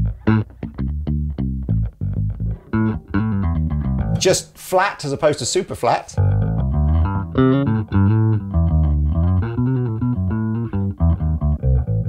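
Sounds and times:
electric bass riff: 0.0 - 4.5, 6.1 - 12.0.

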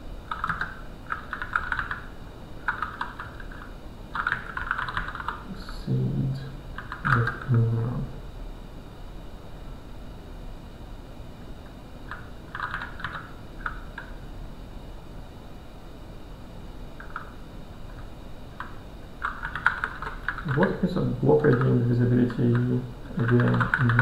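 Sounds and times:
computer keyboard typing: 0.3 - 5.4, 6.8 - 7.7, 12.0 - 14.2, 17.0 - 18.0, 18.6 - 24.0.

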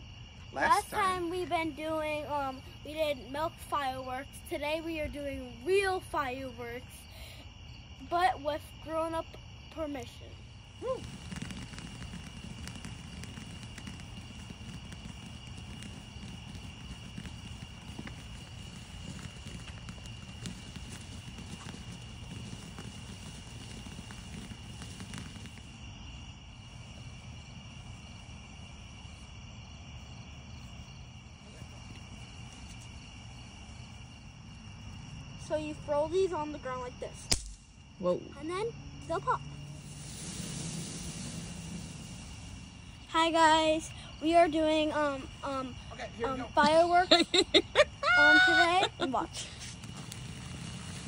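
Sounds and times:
firework hissing and crackling: 0.0 - 51.0
insects trilling: 0.0 - 51.0.

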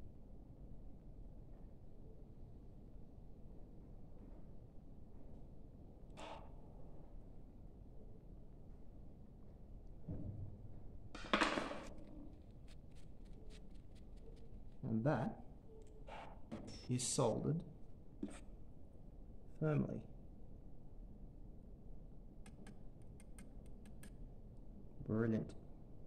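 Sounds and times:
faint crackles: 11.8 - 15.0
tissue wiping metal: 12.3 - 15.2.

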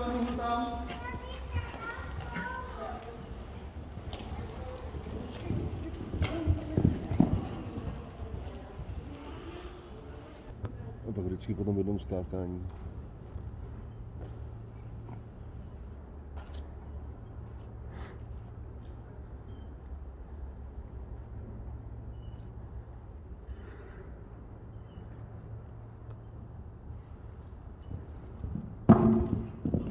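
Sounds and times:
horse hoofbeats on sand: 0.0 - 9.7, 27.8 - 29.9.

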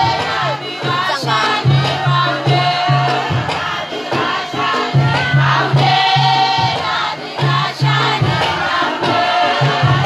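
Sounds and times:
chorus of voices chanting: 0.0 - 10.0
steady pulsing beat: 0.0 - 10.0.

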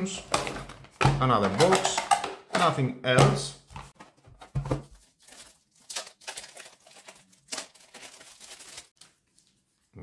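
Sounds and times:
plastic wrapping crinkling: 4.8 - 9.9.

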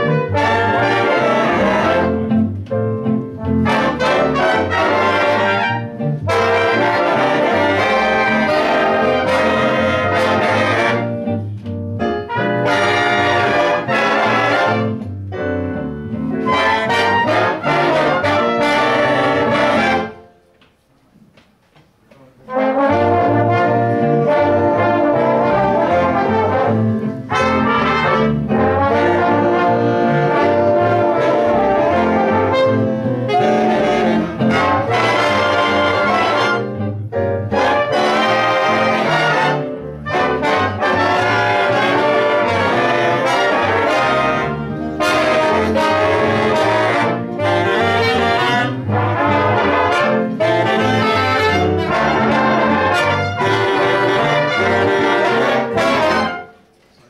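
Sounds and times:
saxophones: 0.0 - 2.5, 3.6 - 11.5, 12.2 - 15.0, 16.4 - 20.4, 22.4 - 56.7
trumpets: 0.0 - 2.5, 3.6 - 11.4, 12.2 - 15.1, 16.4 - 20.4, 22.4 - 56.7
electric bass: 0.0 - 20.1, 22.9 - 56.3
trombones: 0.0 - 20.4, 22.4 - 56.7
piano: 0.0 - 57.0.

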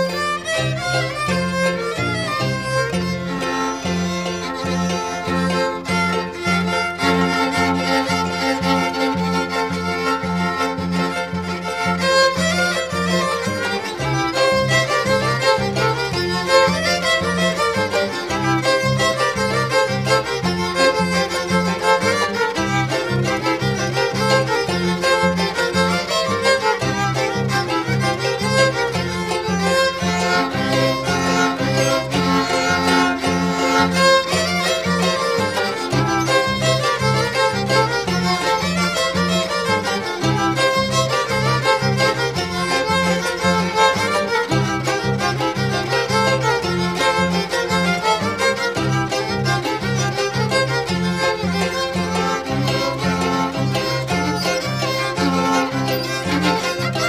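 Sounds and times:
plucked string accompaniment: 0.0 - 57.0
violin melody: 0.0 - 57.0.

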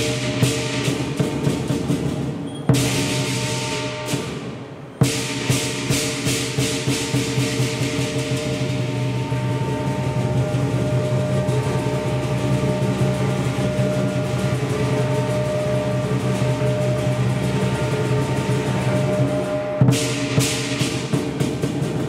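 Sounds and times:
cymbals: 0.0 - 22.0
drum: 0.0 - 22.0
gong ringing: 2.8 - 21.3.

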